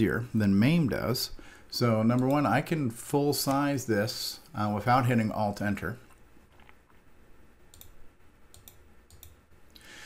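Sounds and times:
computer mouse clicks: 7.7 - 9.4.

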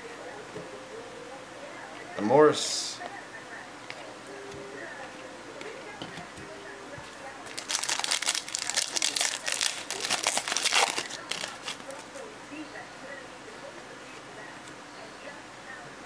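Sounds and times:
foil wrapper tearing and crackling: 7.5 - 12.1.

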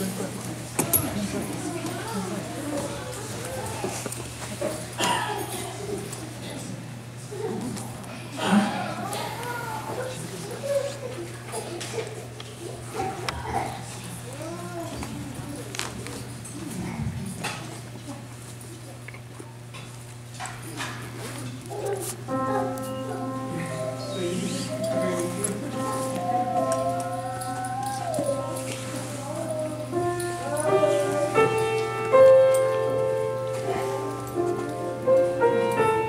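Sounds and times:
low electrical hum: 0.0 - 36.0
murmur of voices: 0.0 - 36.0.

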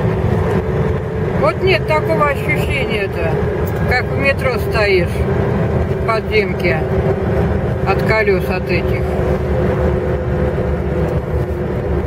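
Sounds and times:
car cabin rumble while driving: 0.0 - 12.0.

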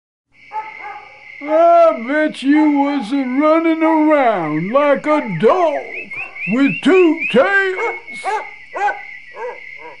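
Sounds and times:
dog barking: 0.5 - 1.3, 5.2 - 6.6, 7.6 - 10.0.

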